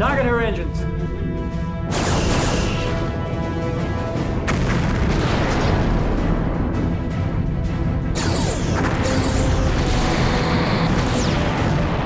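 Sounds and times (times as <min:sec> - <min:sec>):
orchestral score music: 0:00.0 - 0:12.0
sci-fi weapon fire and explosion: 0:01.9 - 0:07.2, 0:07.8 - 0:12.0.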